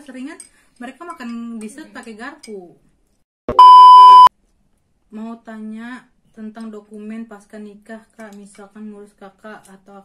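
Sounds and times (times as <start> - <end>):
electronic censor bleep: 3.5 - 4.3.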